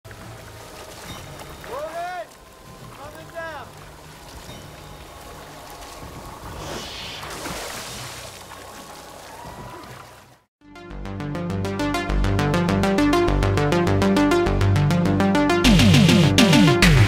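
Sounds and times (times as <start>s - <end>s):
water sloshing and splashing: 0.1s - 10.5s.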